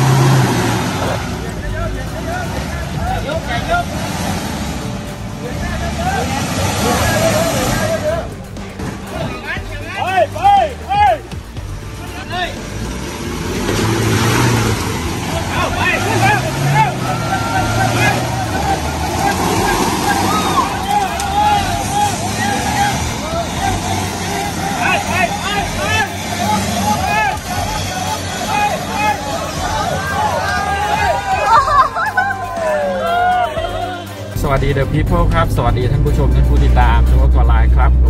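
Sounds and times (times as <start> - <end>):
truck engine revving in mud: 0.0 - 9.4, 11.4 - 32.7
people's voices: 0.0 - 38.0.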